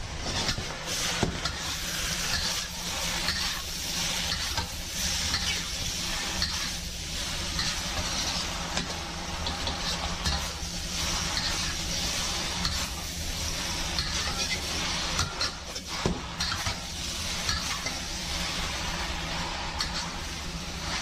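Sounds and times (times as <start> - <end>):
food sizzling in a wok: 0.0 - 21.0
metal spatula scraping a pan: 0.2 - 21.0.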